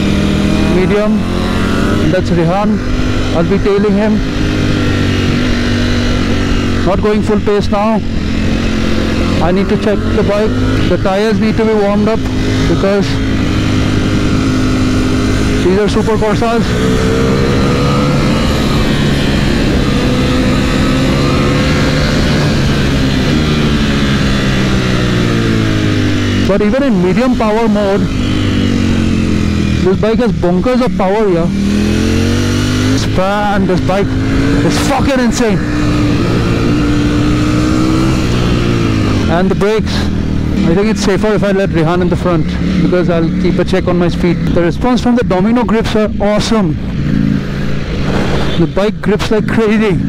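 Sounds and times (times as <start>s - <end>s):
motorcycle engine cruising: 0.0s - 50.0s
wind noise on microphone: 46.8s - 49.0s.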